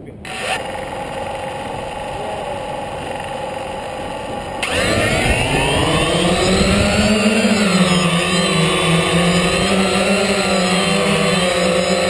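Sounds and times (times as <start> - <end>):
drone motors whining: 0.0 - 12.0.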